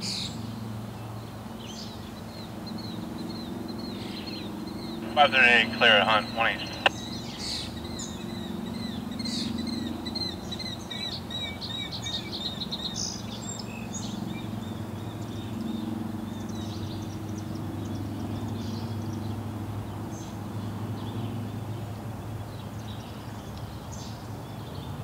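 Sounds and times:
small birds chirping: 1.0s - 21.4s
low steady hum: 3.0s - 7.4s.

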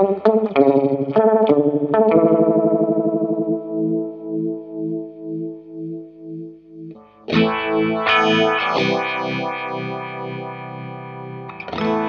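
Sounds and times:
electric guitar with phaser: 0.0s - 12.0s.

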